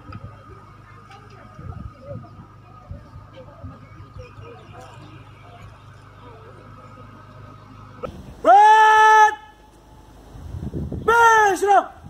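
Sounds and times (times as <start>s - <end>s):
man shouting drill command: 8.4s - 9.6s, 11.0s - 12.0s.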